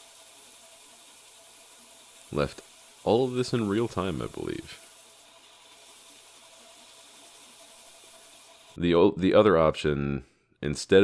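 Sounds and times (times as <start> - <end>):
belt grinder sanding hiss: 0.0 - 8.8.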